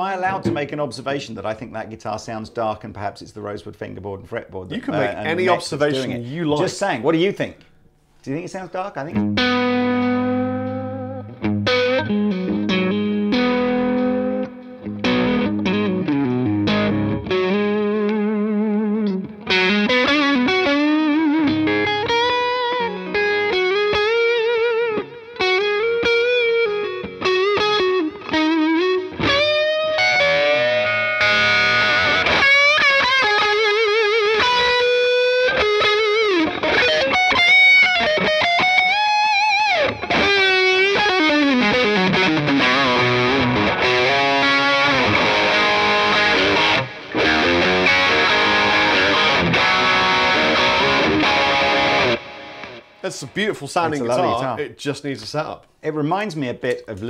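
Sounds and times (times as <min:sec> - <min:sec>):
overdriven electric guitar: 0:09.2 - 0:53.0.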